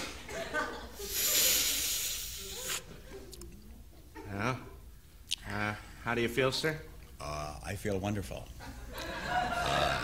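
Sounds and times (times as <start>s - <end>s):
breathy inhale hiss: 1.0s - 2.8s.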